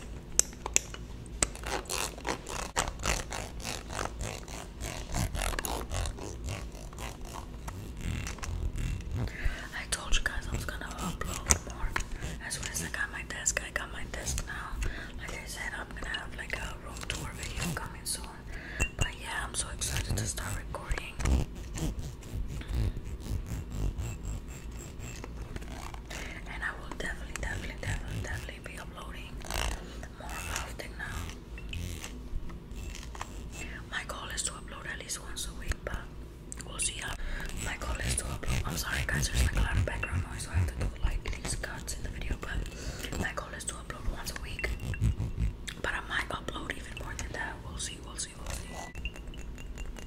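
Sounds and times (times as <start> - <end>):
soft whispering: 9.1 - 21.4, 26.1 - 31.4, 33.5 - 49.0
fingernails tapping on glass bottle: 48.9 - 50.0.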